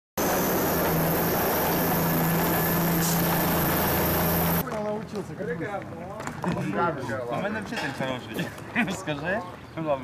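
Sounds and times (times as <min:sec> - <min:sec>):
tank engine humming: 0:00.2 - 0:04.6.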